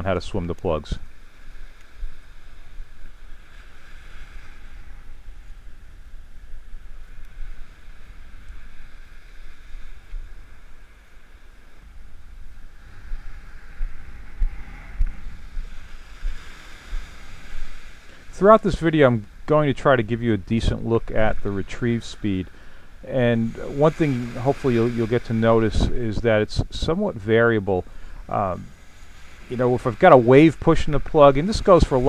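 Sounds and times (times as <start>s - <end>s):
surf washing on sandy beach: 0.0s - 32.0s
wind buffeting microphone: 0.0s - 32.0s.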